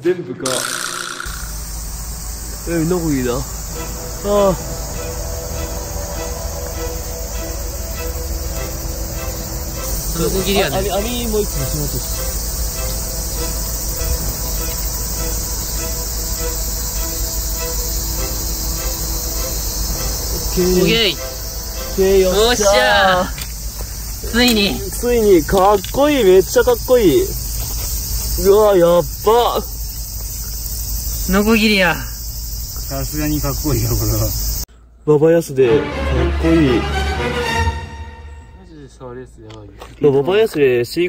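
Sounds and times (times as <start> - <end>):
insects chorus: 0.4 - 41.0
low rumble: 1.3 - 22.6
wordless voice sounds: 10.0 - 12.1, 21.9 - 23.4.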